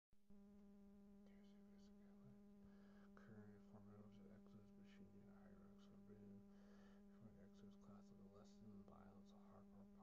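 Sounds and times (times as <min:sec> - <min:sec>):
faint buzzing hum: 0:00.2 - 0:10.0.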